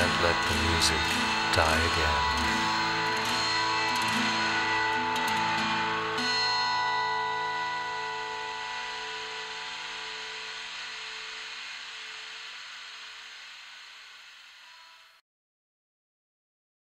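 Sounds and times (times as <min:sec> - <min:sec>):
electric guitar chord ringing: 0:00.0 - 0:15.1
faint hiss: 0:07.3 - 0:15.2.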